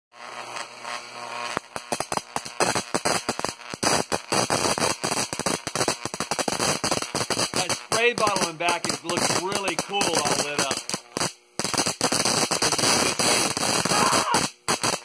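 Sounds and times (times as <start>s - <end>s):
high-voltage arcs crackling: 0.1s - 15.0s
low electrical buzz: 0.2s - 15.0s.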